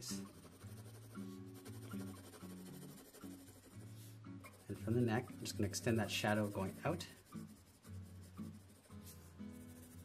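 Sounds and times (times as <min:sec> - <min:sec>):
pencil scratching on paper: 0:00.0 - 0:10.0
quiet background music: 0:00.0 - 0:10.0.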